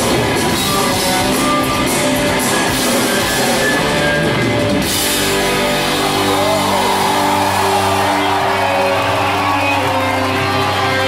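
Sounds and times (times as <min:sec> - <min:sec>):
punk rock band playing: 0:00.0 - 0:11.0.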